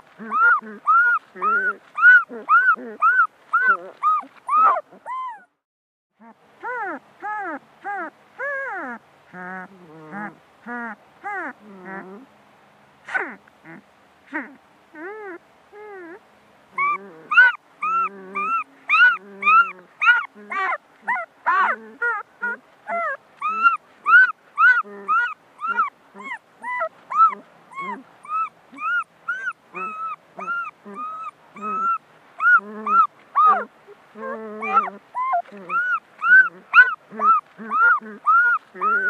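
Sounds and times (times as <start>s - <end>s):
puppy whimpering and yelping: 0.0s - 5.6s, 6.2s - 12.3s, 13.1s - 16.2s, 16.8s - 39.0s.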